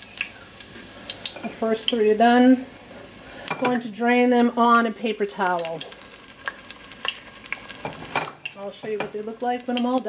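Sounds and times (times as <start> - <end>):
food deep-frying in oil: 0.0 - 10.0.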